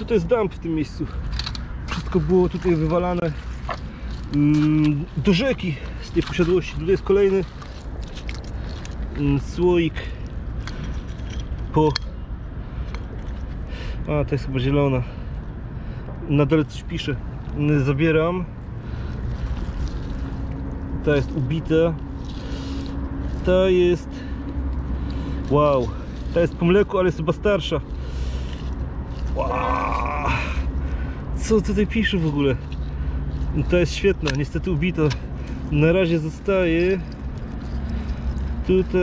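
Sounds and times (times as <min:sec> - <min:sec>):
steady low rumble: 0:00.0 - 0:39.0
man exclaiming wow: 0:29.4 - 0:30.6.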